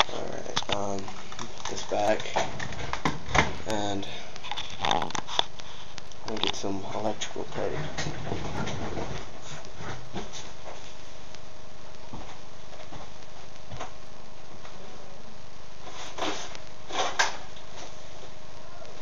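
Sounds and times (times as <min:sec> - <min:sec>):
faint steady hum: 0:00.0 - 0:19.0
room hiss: 0:00.0 - 0:19.0.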